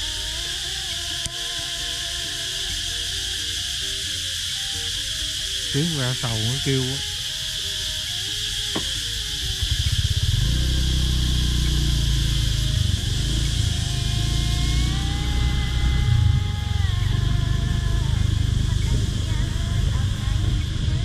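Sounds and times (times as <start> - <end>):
cicadas droning: 0.0 - 21.0
motorbike engine running: 2.5 - 21.0.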